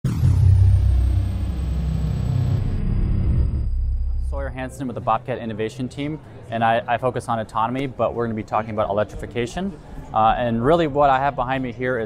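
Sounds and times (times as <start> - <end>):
deep steady rumble: 0.0 - 4.8
thin high falling sweep: 0.1 - 4.6.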